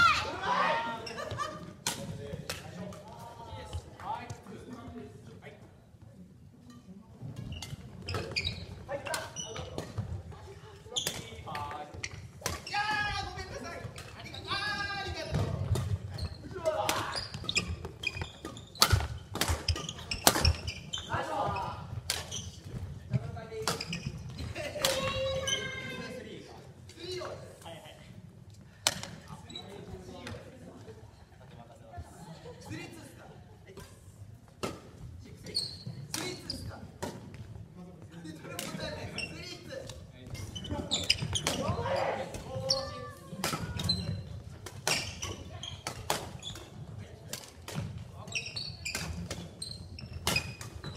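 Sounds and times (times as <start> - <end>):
rackets hitting shuttlecock: 1.8 - 3.2, 16.7 - 20.8, 40.9 - 42.7, 43.3 - 48.2
shoes squeaking on court: 7.2 - 10.3, 10.9 - 12.8, 14.1 - 26.0, 29.0 - 30.0, 35.4 - 36.8, 38.7 - 50.9
rackets striking shuttlecock: 16.8 - 20.7.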